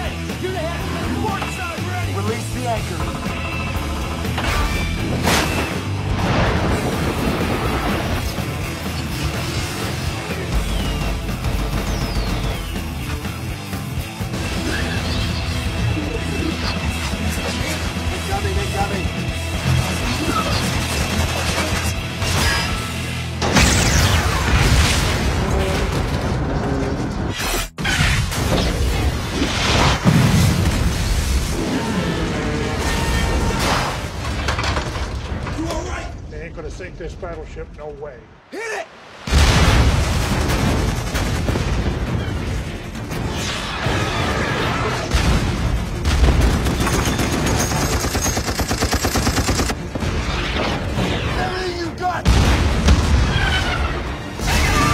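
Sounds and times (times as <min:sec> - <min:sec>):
gunfire booms and explosions: 0:00.0 - 0:15.9, 0:16.6 - 0:37.4, 0:39.2 - 0:54.9
orchestral film score: 0:00.0 - 0:27.3, 0:48.6 - 0:54.9.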